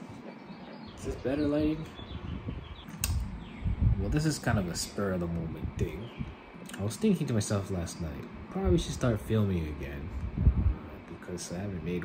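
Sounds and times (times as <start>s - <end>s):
sharp click: 2.9s - 3.3s.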